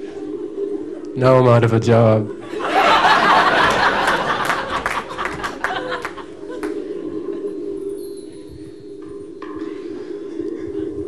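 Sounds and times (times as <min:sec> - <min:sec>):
high ringing tones: 0:07.7 - 0:09.4.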